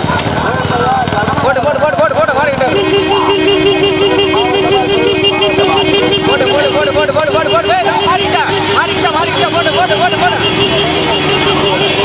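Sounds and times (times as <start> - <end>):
men shouting: 1.4 - 12.0
two-tone vehicle horn: 2.1 - 12.0.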